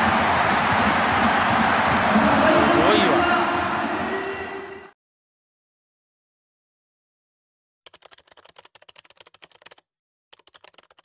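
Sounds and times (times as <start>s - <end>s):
fast keyboard typing clicks: 7.9s - 11.0s.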